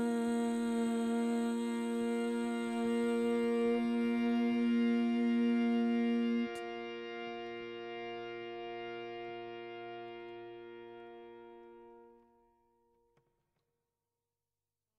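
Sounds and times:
long held note: 0.0s - 12.3s.

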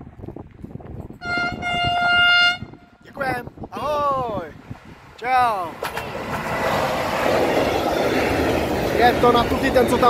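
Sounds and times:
locomotive horn long note: 1.2s - 3.0s.

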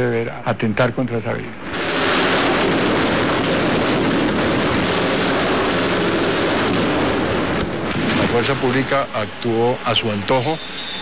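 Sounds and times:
rapid automatic gunfire: 1.6s - 8.8s.

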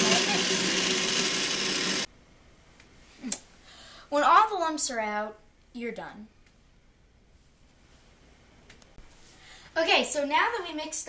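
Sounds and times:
blender motor humming: 0.0s - 2.1s.

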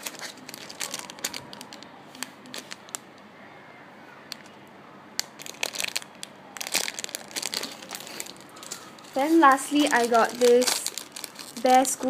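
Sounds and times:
plastic bag crinkling: 0.0s - 3.0s, 5.2s - 12.0s.

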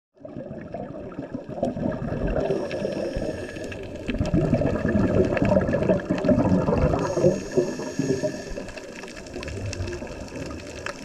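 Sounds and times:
underwater regulator bubbles gurgling: 0.2s - 11.0s
faint clicks: 7.0s - 11.0s.

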